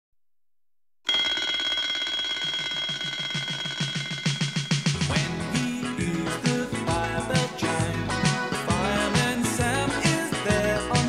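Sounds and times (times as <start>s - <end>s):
alarm clock ringing: 1.1s - 5.1s.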